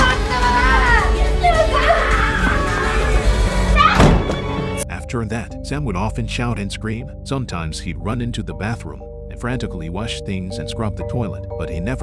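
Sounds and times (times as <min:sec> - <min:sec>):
woman screaming in fright: 0:00.3 - 0:04.2.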